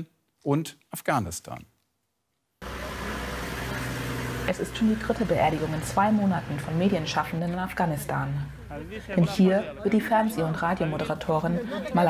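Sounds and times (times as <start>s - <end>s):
vehicle engine idling: 2.6s - 11.8s.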